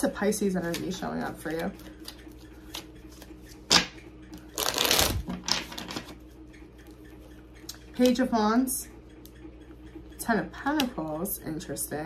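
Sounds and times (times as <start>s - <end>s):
cards rustling: 4.5s - 6.1s.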